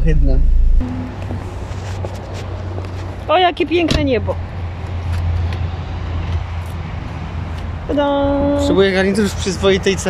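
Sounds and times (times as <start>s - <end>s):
car engine humming: 0.0s - 5.6s
traffic noise: 0.0s - 10.0s.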